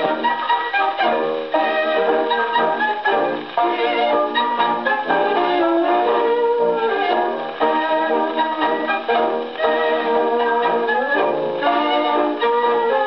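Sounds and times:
gramophone playing tango record: 0:00.0 - 0:13.0.

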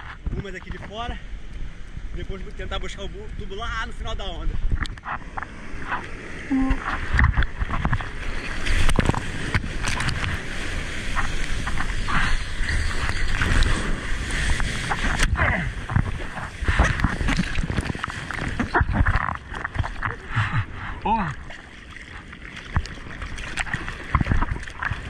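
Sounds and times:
water splashing and churning: 0:00.0 - 0:25.0
underwater bubbling rush: 0:05.0 - 0:25.0.

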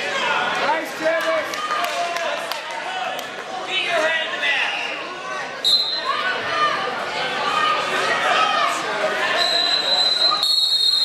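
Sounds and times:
spectators' voices: 0:00.0 - 0:11.0
referee's whistle blast: 0:09.3 - 0:11.0.

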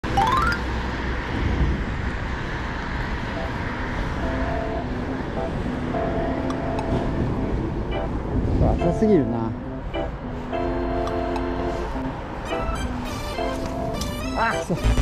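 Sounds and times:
rising jingle sound effect: 0:00.0 - 0:00.7
road traffic noise: 0:00.0 - 0:15.0
soft background music: 0:04.2 - 0:15.0.

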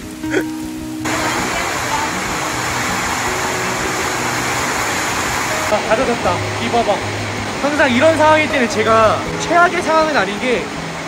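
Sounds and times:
torrential rain: 0:00.0 - 0:11.0.

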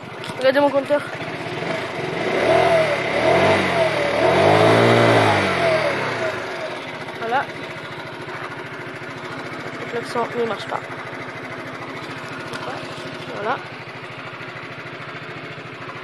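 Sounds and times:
scooter engine revving: 0:00.0 - 0:16.0.

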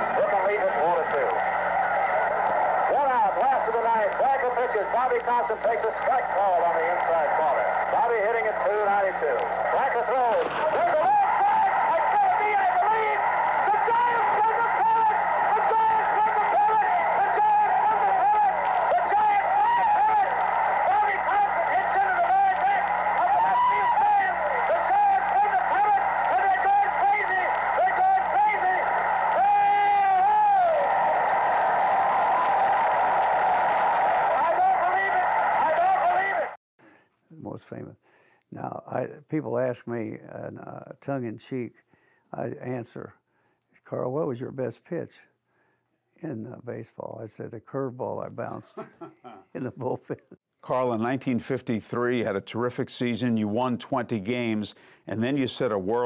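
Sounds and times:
crowd cheering: 0:00.0 - 0:36.6
announcer shouting excitedly: 0:02.9 - 0:30.9, 0:34.2 - 0:36.6.

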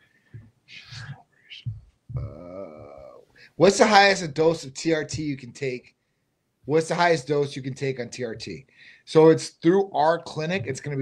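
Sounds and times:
faint low bumps: 0:00.4 - 0:02.4
person whispering: 0:00.7 - 0:03.1.

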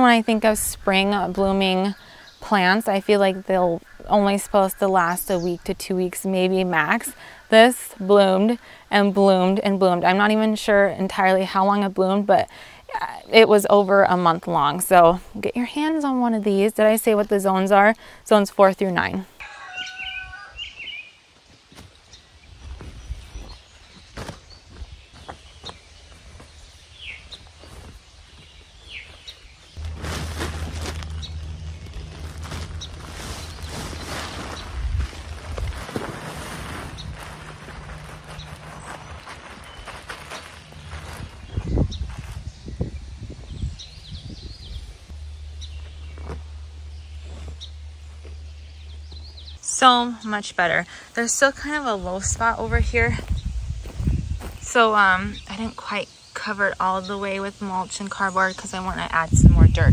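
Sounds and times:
small birds chirping: 0:00.0 - 0:59.9
rustling and scraping handling noise: 0:27.2 - 0:42.6, 0:45.1 - 0:49.6.

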